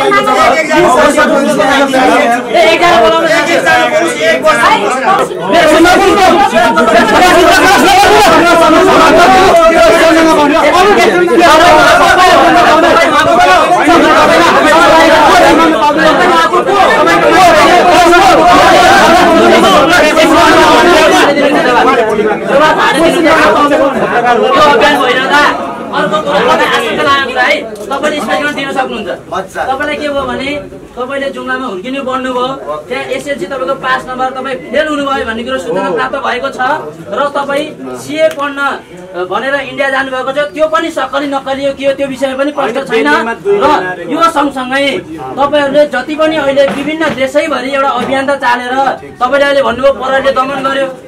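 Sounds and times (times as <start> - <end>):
people talking loudly: 0.0 - 51.0.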